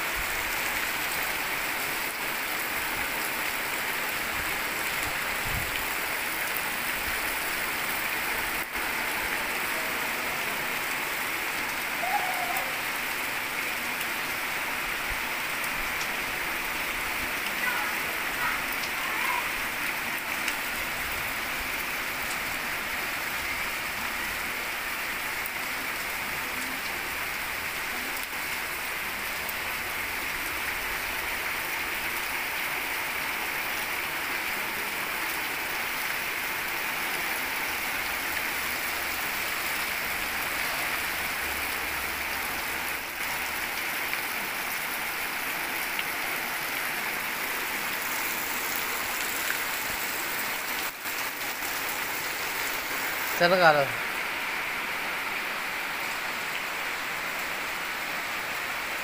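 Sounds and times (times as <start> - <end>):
heavy rain splashing on puddles: 0.0 - 59.0.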